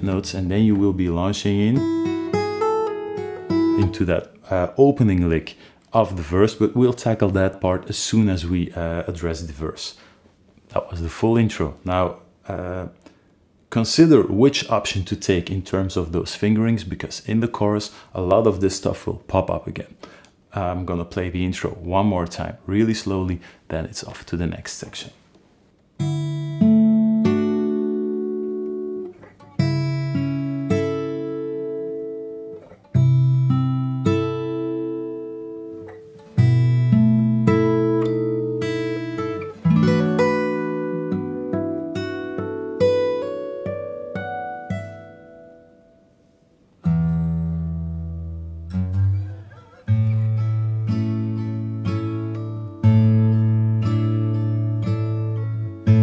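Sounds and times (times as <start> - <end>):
fingerstyle acoustic guitar: 0.0 - 4.4, 26.0 - 56.0.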